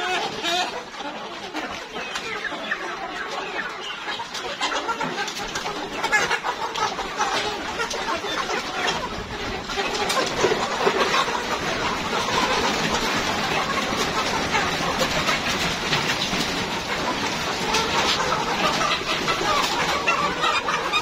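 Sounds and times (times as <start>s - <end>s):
chickens clucking: 0.0s - 21.0s.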